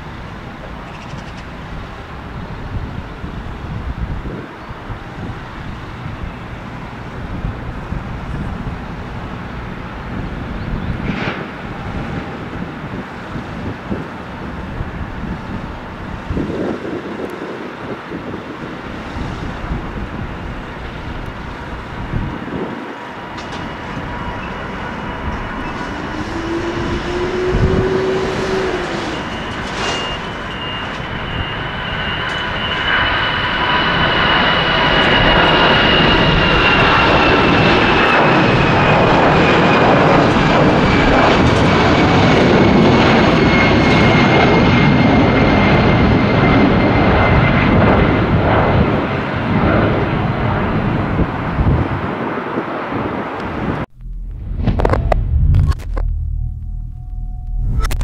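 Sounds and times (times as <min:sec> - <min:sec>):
high jet engine whine: 0:00.0 - 0:58.0
jet engines rumbling: 0:00.0 - 0:58.0.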